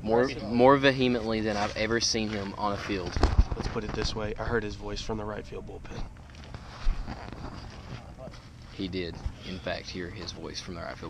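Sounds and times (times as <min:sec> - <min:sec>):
wind rumbling on microphone: 0:02.9 - 0:06.0.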